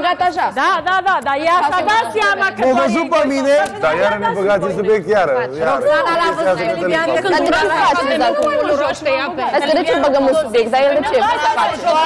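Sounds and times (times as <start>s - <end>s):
people arguing: 0.0s - 12.0s.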